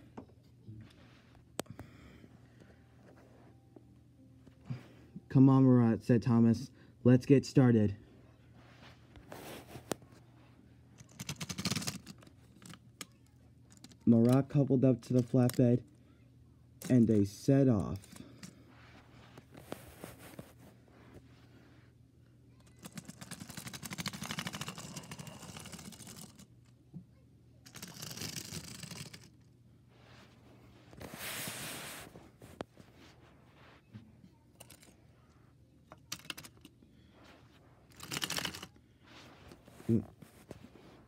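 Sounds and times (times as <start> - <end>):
toy train rattling on track: 22.7 - 26.4, 27.7 - 29.3, 37.9 - 38.7.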